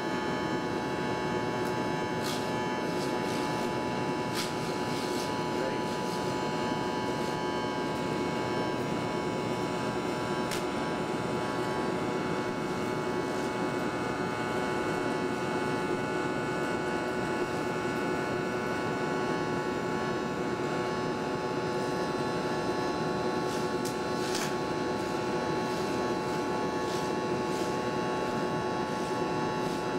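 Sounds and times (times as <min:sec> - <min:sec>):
steady hum: 0:00.0 - 0:29.9
welding arc sizzling: 0:00.1 - 0:29.9.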